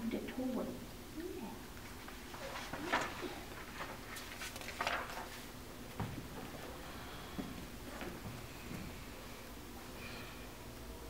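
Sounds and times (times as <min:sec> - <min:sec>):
rustling and scuffing on wooden floor: 0:02.1 - 0:09.0.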